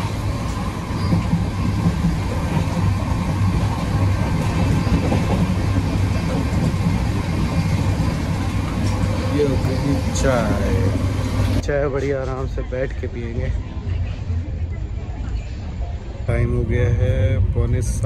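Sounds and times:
train rumbling inside carriage: 0:00.0 - 0:18.0.

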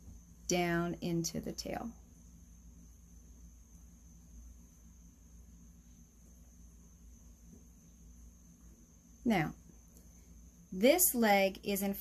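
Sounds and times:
faint high whine: 0:00.0 - 0:12.0
low steady hum: 0:00.0 - 0:12.0.

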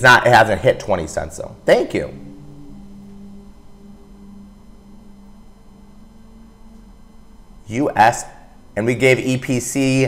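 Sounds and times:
faint low hum: 0:00.0 - 0:10.0
soft held tones: 0:00.0 - 0:10.0.

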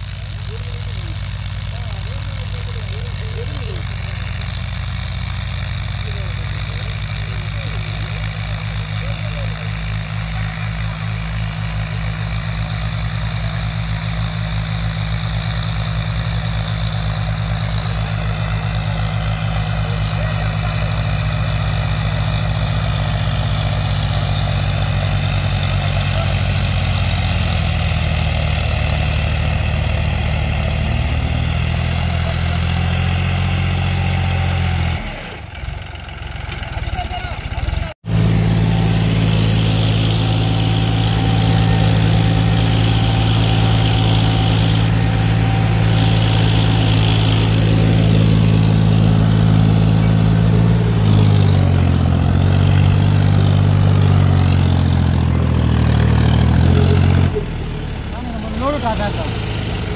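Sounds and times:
diesel tractor engines: 0:00.0 - 0:59.9.

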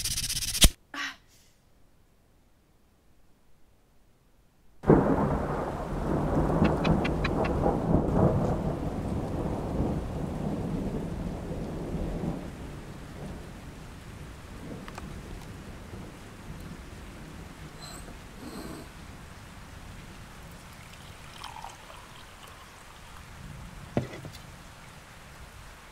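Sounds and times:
thunder rumbling: 0:04.8 - 0:21.2
steady rain: 0:04.8 - 0:25.9.

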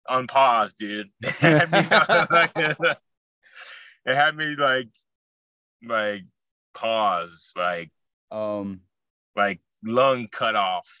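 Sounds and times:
man laughing: 0:01.2 - 0:03.0
breathy exhale: 0:03.5 - 0:04.0.

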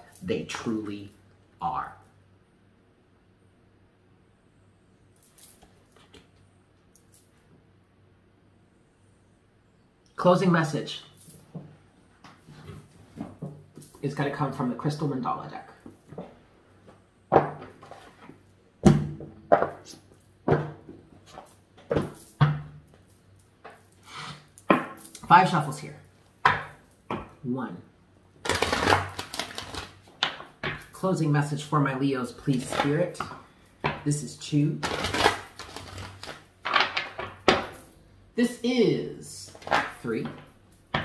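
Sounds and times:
cards being shuffled: 0:28.4 - 0:30.4, 0:32.4 - 0:33.2, 0:34.8 - 0:37.7, 0:39.5 - 0:40.4.

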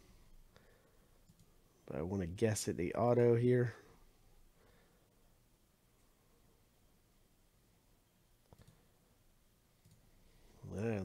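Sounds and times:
faint short clicks: 0:08.4 - 0:08.8
man's voice: 0:10.6 - 0:11.0.

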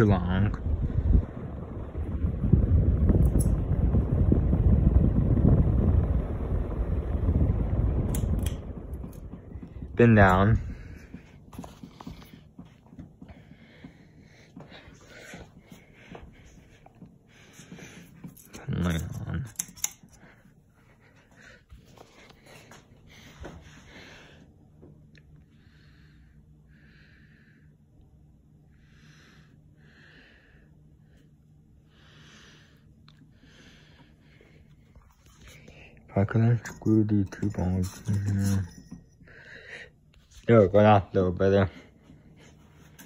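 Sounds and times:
ceiling fan buffeting microphone: 0:00.0 - 0:43.0.

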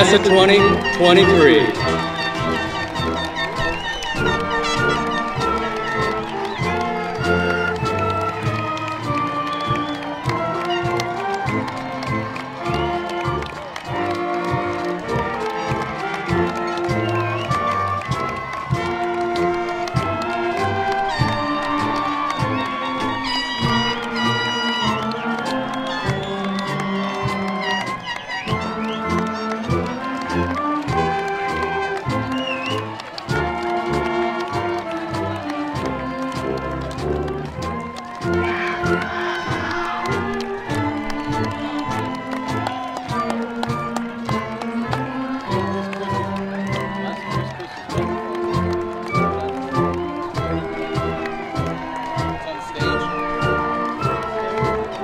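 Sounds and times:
instrumental processional music: 0:00.0 - 0:55.0.

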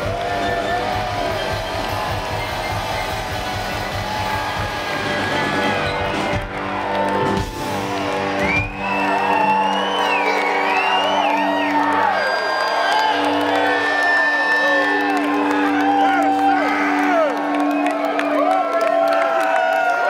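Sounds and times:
live rock band: 0:00.0 - 0:12.1
crowd whooping and cheering: 0:00.0 - 0:20.0.

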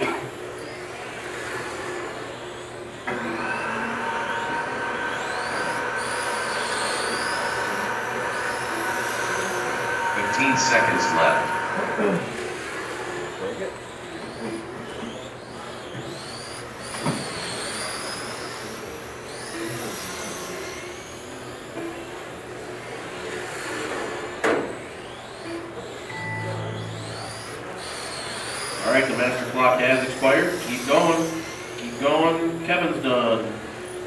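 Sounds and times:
electric rc cars whining: 0:00.0 - 0:34.0.

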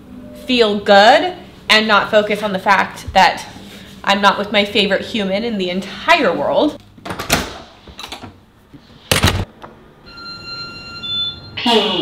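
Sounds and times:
steady electronic beep: 0:10.0 - 0:12.0.

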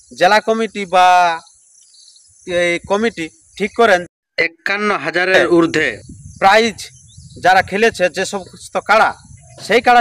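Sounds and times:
insect chorus: 0:00.0 - 0:04.0
man talking: 0:02.5 - 0:10.0.

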